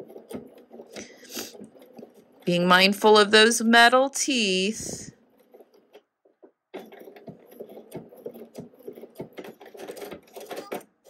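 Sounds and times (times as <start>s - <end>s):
sewing machine stitching: 0.0s - 3.9s, 5.1s - 11.0s.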